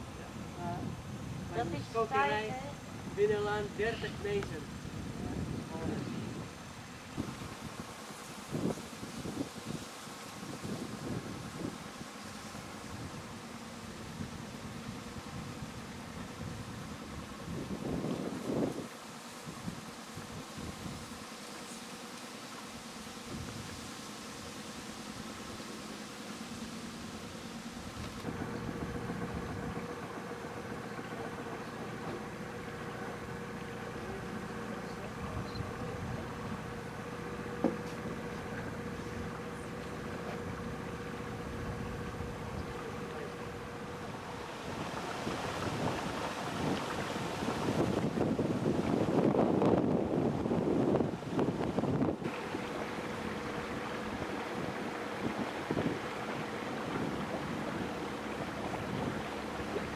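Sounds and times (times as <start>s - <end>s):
wind gusts on microphone: 0.0s - 21.2s, 23.2s - 25.6s, 34.8s - 59.9s
motor boat engine running: 0.0s - 59.9s.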